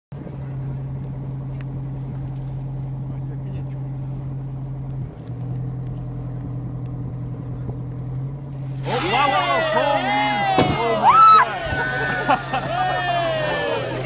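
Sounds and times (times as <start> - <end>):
boat engine humming: 0.2 - 14.0.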